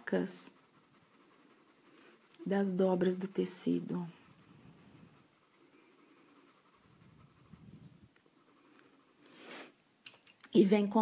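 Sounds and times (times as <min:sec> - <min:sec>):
pencil scratching on paper: 0:00.0 - 0:09.8.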